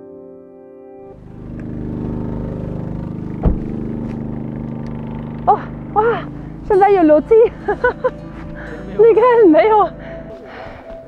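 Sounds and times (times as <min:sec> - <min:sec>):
low hum: 0:01.1 - 0:10.6
sharp knock: 0:03.4 - 0:03.8
soft background music: 0:05.5 - 0:11.0.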